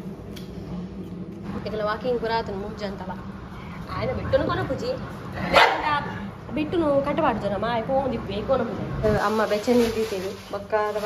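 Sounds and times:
dog barking loudly: 5.5 - 5.9.

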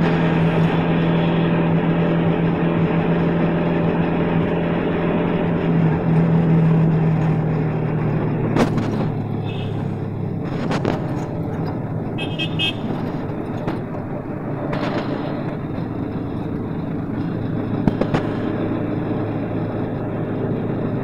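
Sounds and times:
road and traffic noise: 0.0 - 21.0
vehicle horn toot: 9.4 - 9.9, 12.2 - 13.0.

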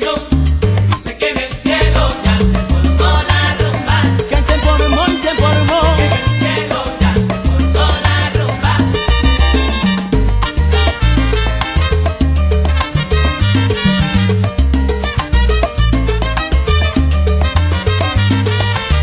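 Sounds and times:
instrumental salsa music: 0.0 - 19.0.

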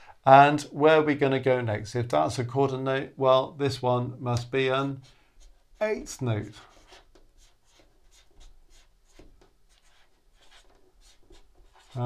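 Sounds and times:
marker writing on whiteboard: 5.0 - 12.0.

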